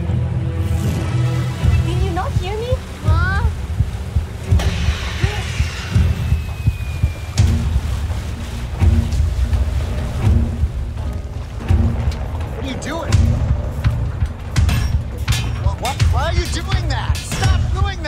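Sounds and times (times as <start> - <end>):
deep throbbing low pulses: 0.0 - 18.0.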